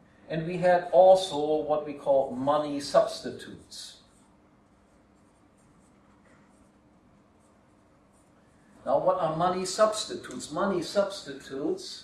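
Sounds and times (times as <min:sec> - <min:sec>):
faint low hum: 0:00.0 - 0:12.0
marker scratching on paper: 0:04.1 - 0:08.4.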